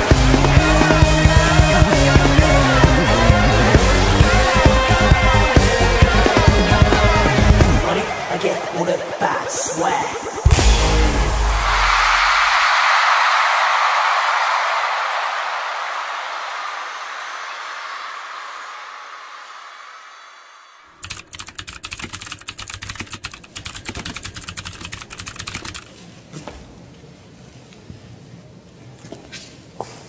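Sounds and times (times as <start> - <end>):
crowd cheering: 0.0 - 23.1
keyboard typing clicks: 21.0 - 25.9.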